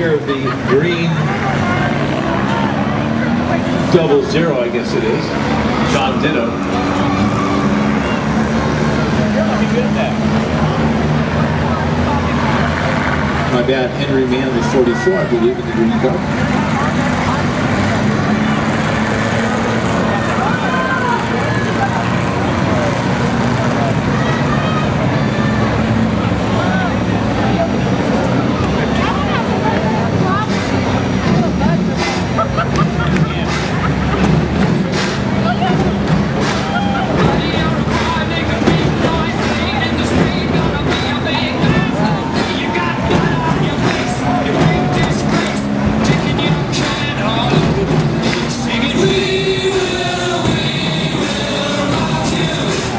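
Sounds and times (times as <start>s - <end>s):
crowd chatter: 0.0s - 52.9s
race car engines running: 0.0s - 52.9s.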